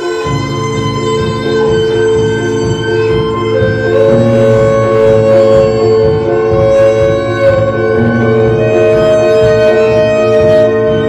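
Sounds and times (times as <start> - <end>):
layered music over loudspeakers: 0.0 - 11.0
unsteady low pulsing: 0.2 - 11.0.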